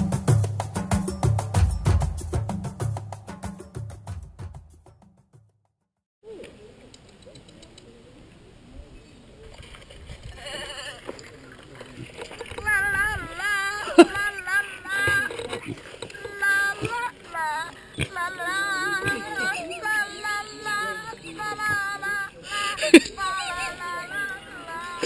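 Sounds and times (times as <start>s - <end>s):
faint background noise: 6.2s - 25.0s
high-pitched voices singing: 12.6s - 25.0s.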